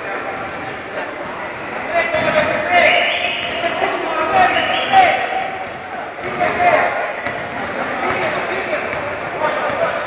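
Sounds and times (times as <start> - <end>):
players calling out: 0.0 - 10.0
basketball bouncing on court: 0.2 - 10.0.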